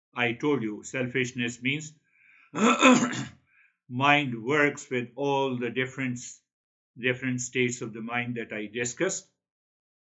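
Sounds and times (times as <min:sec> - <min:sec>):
man clearing his throat: 0:02.6 - 0:03.4.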